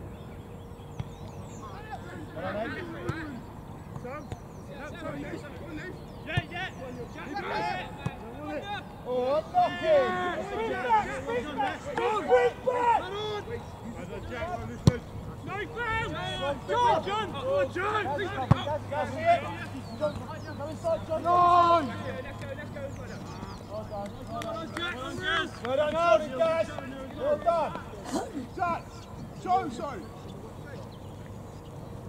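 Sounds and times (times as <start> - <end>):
distant footballers shouting: 0.0 - 32.0.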